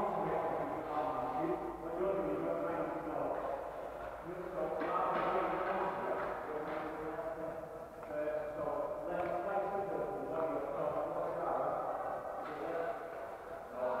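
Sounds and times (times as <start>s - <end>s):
indistinct voices in echoing hall: 0.0s - 14.0s.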